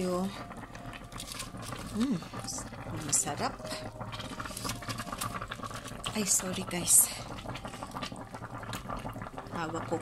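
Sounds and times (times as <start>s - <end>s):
broth simmering and bubbling: 0.0s - 10.0s.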